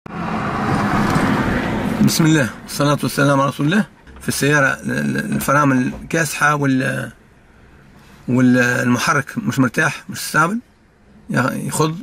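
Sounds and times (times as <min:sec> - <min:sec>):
traffic noise: 0:00.0 - 0:12.0
low wavering engine hum: 0:00.1 - 0:08.5.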